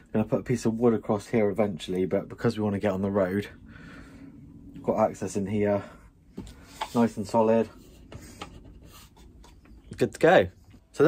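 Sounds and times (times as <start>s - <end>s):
handling noise rubbing and scraping: 4.8s - 10.8s.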